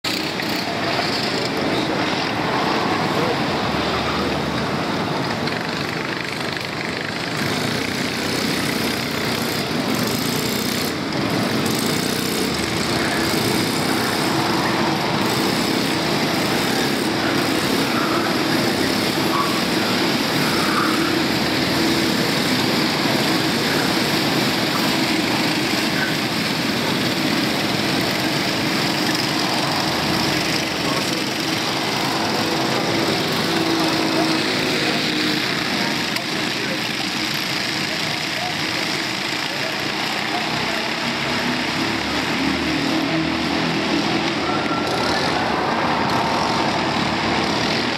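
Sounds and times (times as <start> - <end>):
racing kart engines droning: 0.0 - 47.9.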